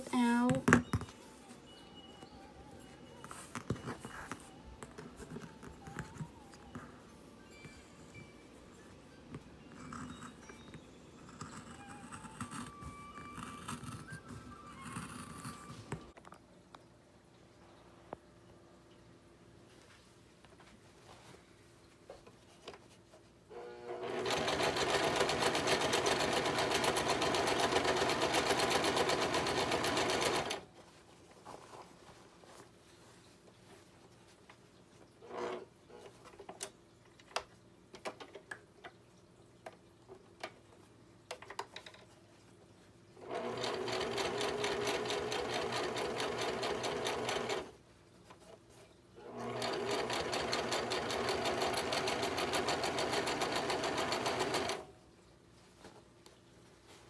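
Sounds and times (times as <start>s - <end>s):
sewing machine stitching: 23.6s - 30.6s, 43.2s - 47.8s, 49.2s - 54.9s.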